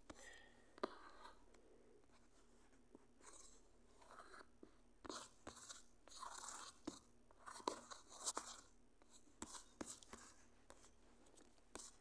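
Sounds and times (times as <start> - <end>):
stylus scratching on tablet: 0.8 - 1.4, 2.1 - 12.0.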